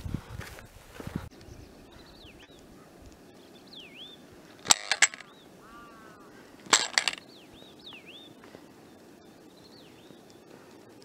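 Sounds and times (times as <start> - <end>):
birds whistling: 1.3 - 10.7.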